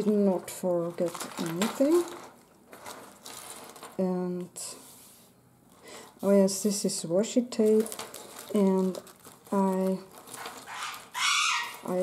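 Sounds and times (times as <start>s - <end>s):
paper rustling: 0.0s - 4.2s, 7.6s - 12.0s.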